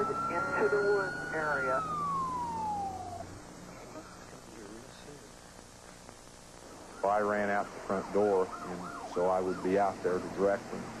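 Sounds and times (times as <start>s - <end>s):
fire engine siren wail: 0.0s - 3.4s, 8.2s - 10.1s
low steady drone: 0.0s - 6.0s.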